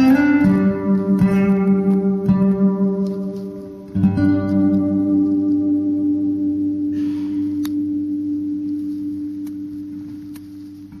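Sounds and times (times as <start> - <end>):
acoustic guitar note ringing: 0.0 - 11.0.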